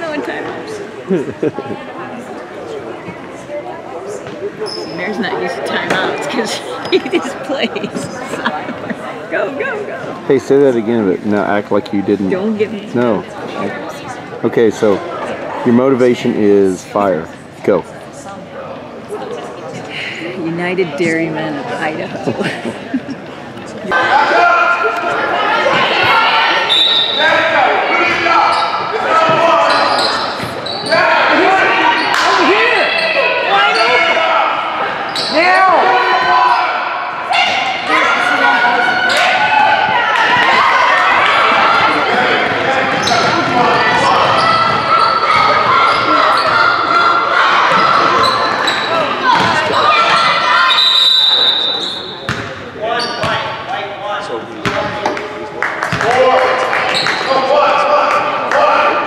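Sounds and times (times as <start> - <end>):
spectators calling and chattering: 0.0 - 59.0
short high whistle: 50.7 - 52.1.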